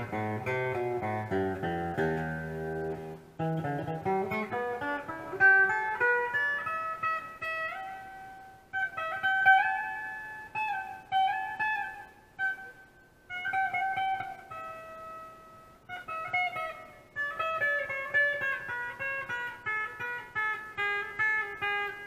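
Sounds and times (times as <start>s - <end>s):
electric guitar lead licks: 0.0s - 22.0s.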